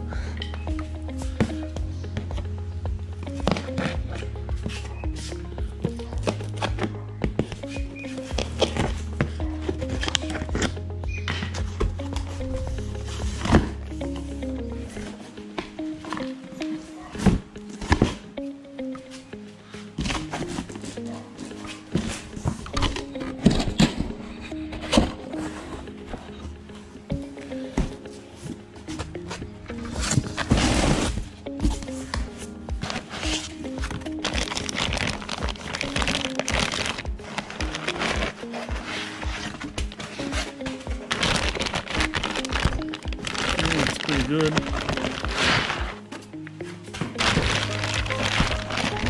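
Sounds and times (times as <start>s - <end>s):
background music with bass line: 0.0s - 19.3s, 20.0s - 49.0s.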